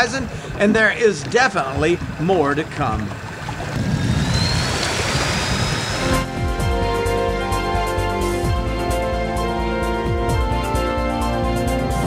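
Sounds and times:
propeller wash splashing: 0:00.0 - 0:06.4
electric motor high whine: 0:03.7 - 0:06.3.

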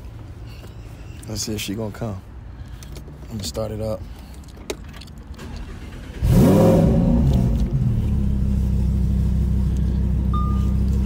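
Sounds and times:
car engine starting and revving: 0:05.3 - 0:11.0.

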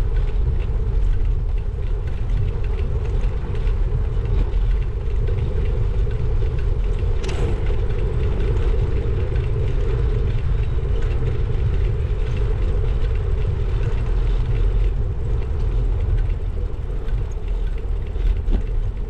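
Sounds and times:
bicycle tyres rumbling on paving: 0:00.0 - 0:19.0
hum: 0:00.0 - 0:19.0
wind on microphone: 0:00.0 - 0:19.0.

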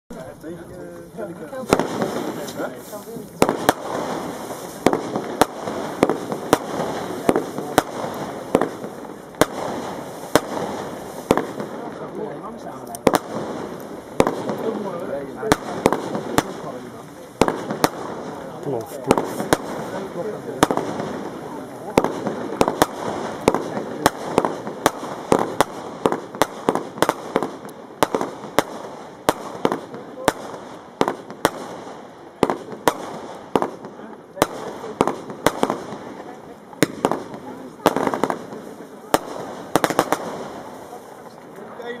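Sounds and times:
fireworks bangs: 0:00.1 - 0:42.0.

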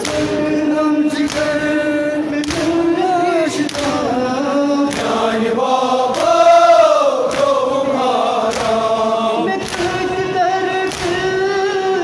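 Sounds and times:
men chanting a lament: 0:00.0 - 0:12.0
chest beating: 0:06.2 - 0:07.1.

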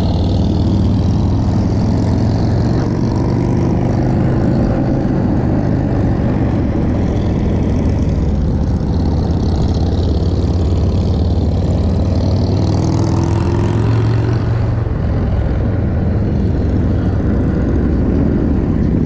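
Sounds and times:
vehicles rumbling: 0:00.0 - 0:19.0.

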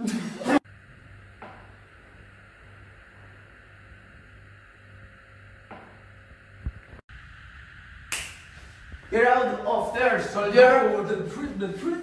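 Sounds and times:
steady low hum: 0:00.4 - 0:12.0.

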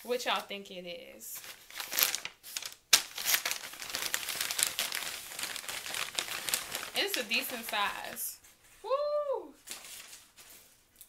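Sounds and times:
paper wrapping crinkling and tearing: 0:01.4 - 0:08.4, 0:09.6 - 0:10.8.

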